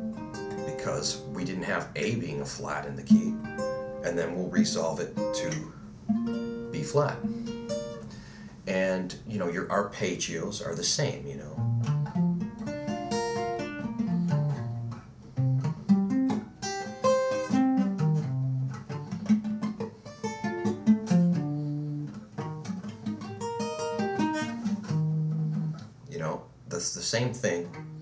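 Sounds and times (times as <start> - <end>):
acoustic guitar arpeggios: 0.0 - 26.4, 27.2 - 28.0.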